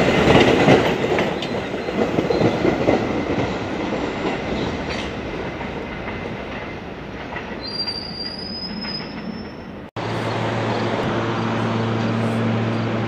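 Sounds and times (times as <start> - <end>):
subway train wheel noise: 0.0 - 13.0
high wheel squeal: 7.6 - 12.9.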